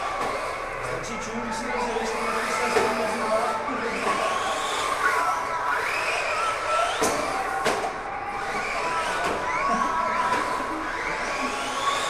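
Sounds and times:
model car motors whining: 0:00.0 - 0:12.0.

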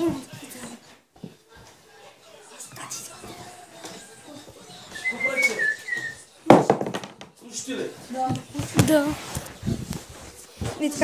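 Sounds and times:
person whistling high notes: 0:04.9 - 0:06.3.

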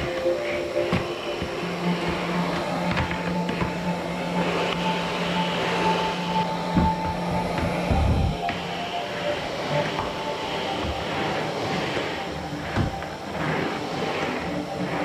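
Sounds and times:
calm background music: 0:00.0 - 0:15.0
vacuum cleaner running: 0:00.0 - 0:15.0.

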